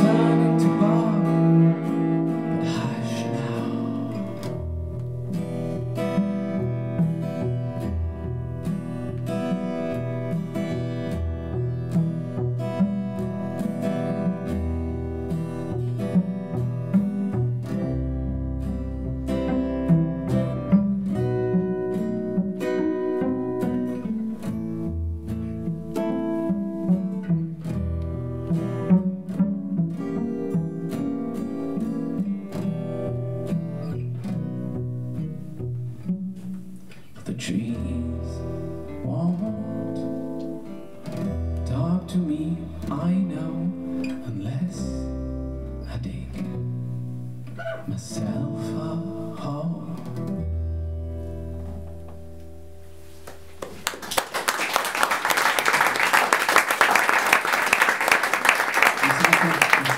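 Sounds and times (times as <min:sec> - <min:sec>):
bowed cello: 0:00.0 - 0:53.0
acoustic guitar plucking: 0:00.0 - 0:59.9.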